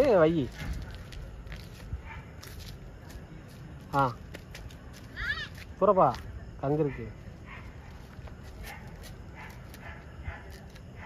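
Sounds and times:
distant dog barking: 0:02.0 - 0:02.4, 0:06.8 - 0:11.0.

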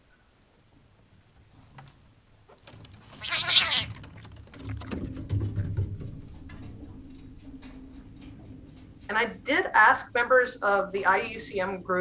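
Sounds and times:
high-pitched animal chittering cry: 0:03.2 - 0:03.9.

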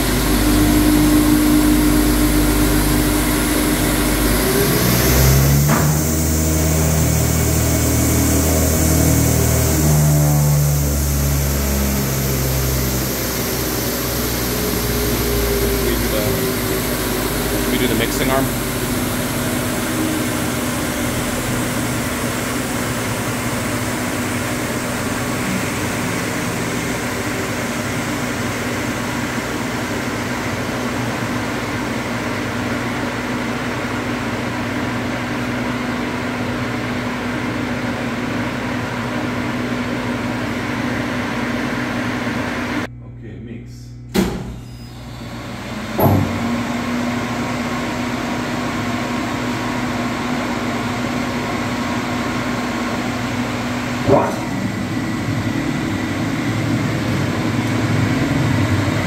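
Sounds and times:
bowl cutter machine humming: 0:00.0 - 0:42.9, 0:44.1 - 0:59.0.

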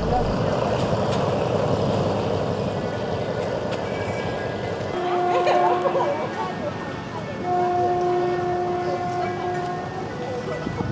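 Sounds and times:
train horn: 0:05.0 - 0:06.4, 0:07.4 - 0:10.8.

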